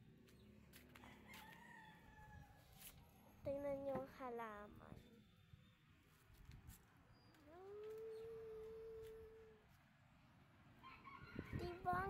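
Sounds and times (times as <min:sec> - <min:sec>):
rooster crowing faintly: 0:00.9 - 0:02.9.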